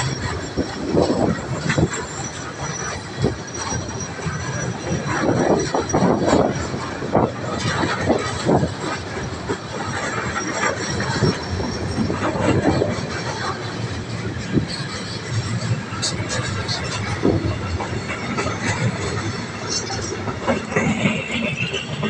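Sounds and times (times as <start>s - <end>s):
freight wagon wheels clicking on rails: 0.0s - 22.0s.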